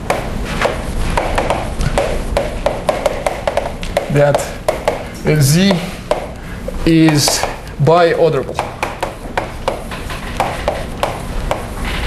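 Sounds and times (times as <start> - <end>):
chalk tapping on blackboard: 0.0 - 7.6, 8.5 - 12.0.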